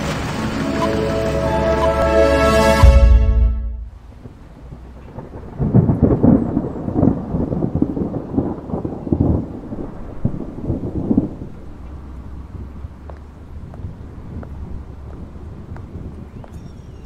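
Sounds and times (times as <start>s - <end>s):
rolling thunder: 3.8s - 16.3s.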